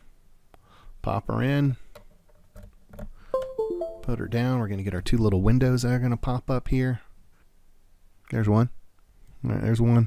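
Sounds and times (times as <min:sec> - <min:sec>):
descending electronic chime: 0:03.4 - 0:04.6.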